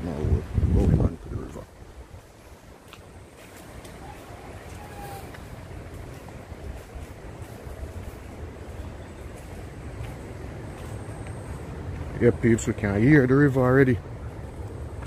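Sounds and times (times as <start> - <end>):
distant river roaring: 0.0 - 15.0.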